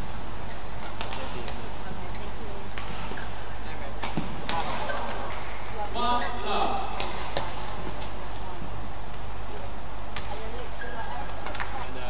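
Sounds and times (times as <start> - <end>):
voices in a hall: 0.0 - 12.0
racket hitting shuttlecock: 0.8 - 1.6, 4.0 - 5.5, 6.8 - 8.2.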